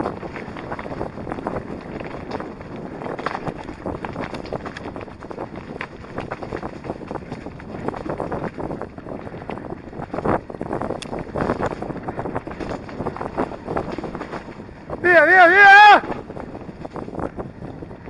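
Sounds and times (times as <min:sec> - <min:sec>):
bike rattling over dirt trail: 0:00.0 - 0:18.0
wind buffeting microphone: 0:00.0 - 0:18.0.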